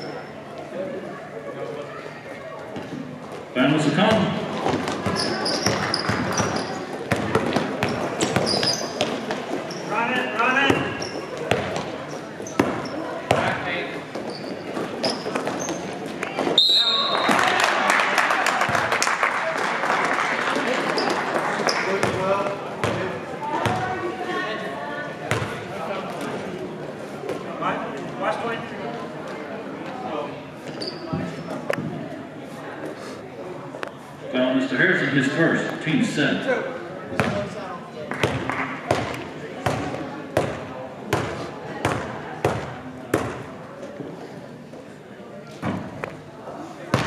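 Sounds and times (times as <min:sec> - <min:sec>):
people shouting and chattering: 0:00.0 - 0:47.0
basketball bouncing on court: 0:04.1 - 0:09.4, 0:10.7 - 0:11.9, 0:12.5 - 0:13.6, 0:22.0 - 0:23.9, 0:25.3 - 0:25.6, 0:37.2 - 0:37.5, 0:38.1 - 0:43.4.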